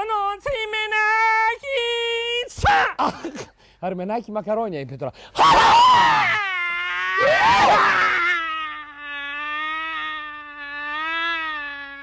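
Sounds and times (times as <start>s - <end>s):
man wailing: 5.4s - 12.0s.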